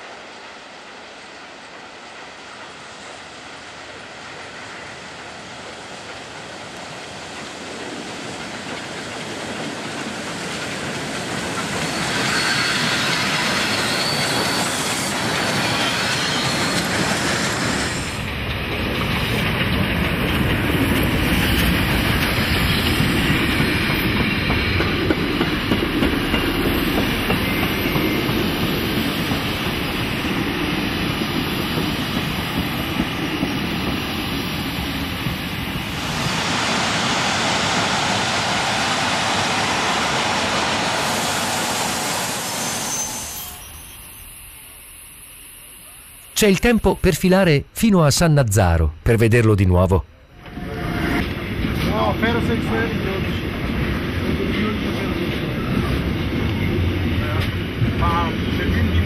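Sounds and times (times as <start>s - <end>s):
steam locomotives passing: 0.0s - 59.0s.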